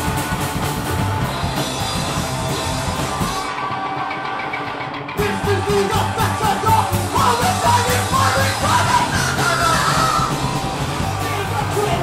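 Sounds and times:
bass guitar: 0.0 - 12.0
drums: 0.0 - 12.0
electric guitar: 0.0 - 12.0
person yelling vocals: 5.2 - 10.4.

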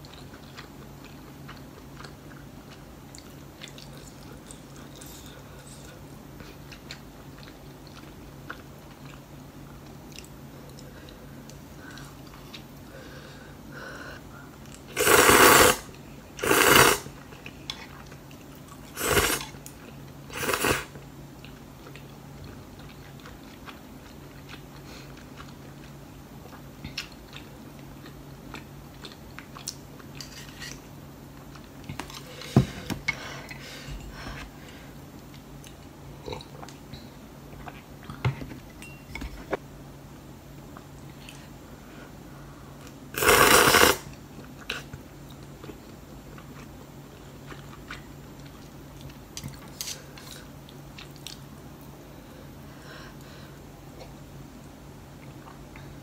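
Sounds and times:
quiet chewing: 0.0 - 12.8, 21.4 - 30.8, 44.1 - 51.9
slurping noodles: 14.9 - 15.8, 16.4 - 17.1, 18.9 - 19.6, 20.3 - 20.9, 43.2 - 44.1.

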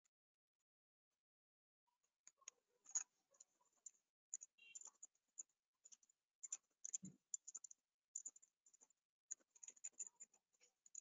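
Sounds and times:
mouse and keyboard clicks: 2.2 - 11.0.

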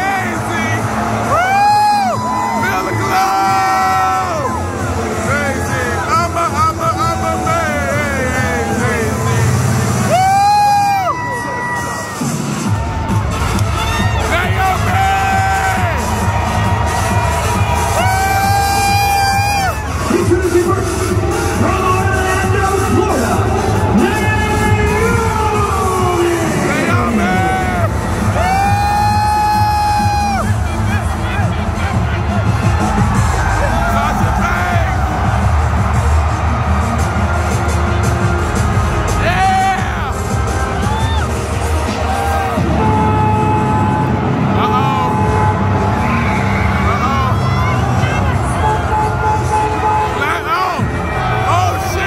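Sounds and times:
crowd cheering: 0.0 - 52.0
entrance music with sung vocal: 0.0 - 52.0.

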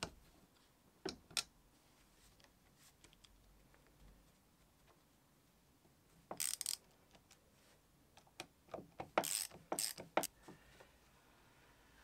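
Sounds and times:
ratchet wrench clicking: 6.4 - 6.8, 9.2 - 10.1.

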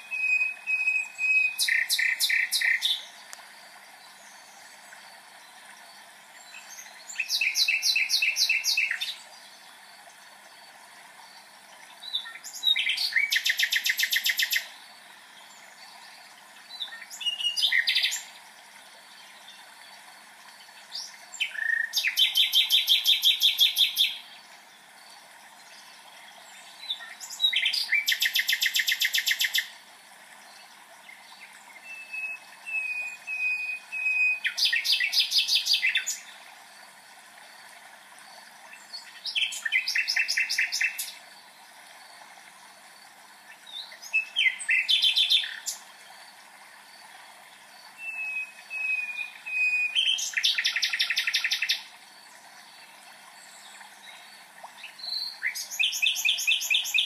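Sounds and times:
songbird trilling: 0.0 - 3.0.

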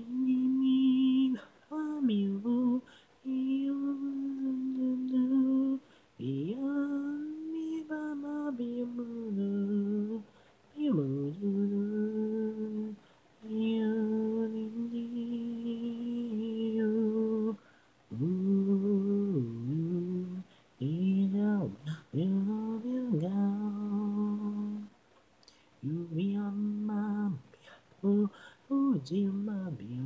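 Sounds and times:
a cappella voice holding a note: 0.0 - 30.0
person singing unaccompanied: 0.0 - 30.0.

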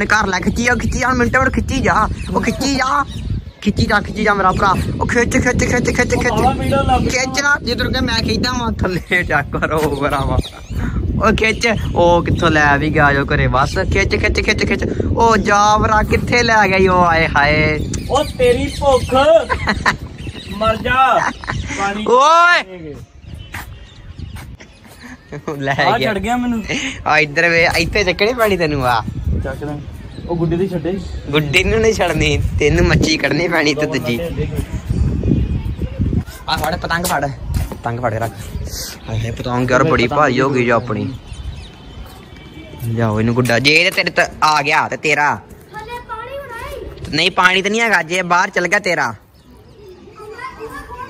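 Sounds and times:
faint children's voices: 28.4 - 51.0.

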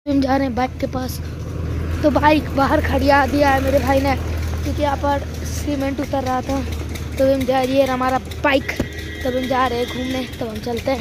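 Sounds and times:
person speaking: 0.1 - 11.0
tractor engine humming: 0.1 - 11.0.

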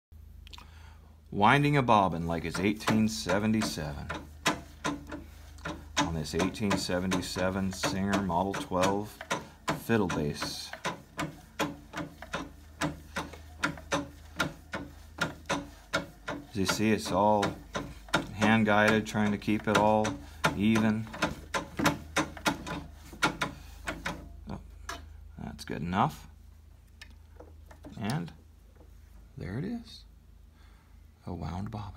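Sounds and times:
sewing machine clicks and knocks: 2.3 - 25.1.

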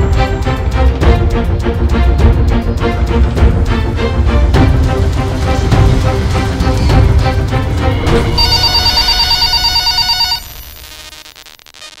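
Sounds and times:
electronic telephone ringing: 8.3 - 11.5.

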